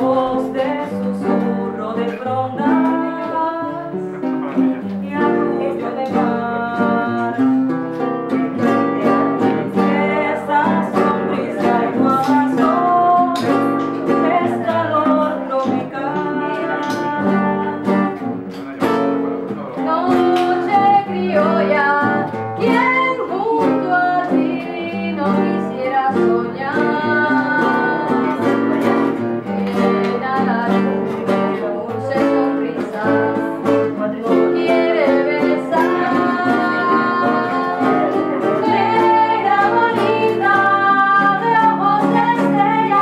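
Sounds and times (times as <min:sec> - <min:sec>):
second woman singing: 0:00.0 - 0:07.6, 0:08.3 - 0:18.3, 0:19.8 - 0:43.0
woman singing: 0:00.0 - 0:18.3, 0:19.8 - 0:43.0
acoustic guitar: 0:00.0 - 0:43.0.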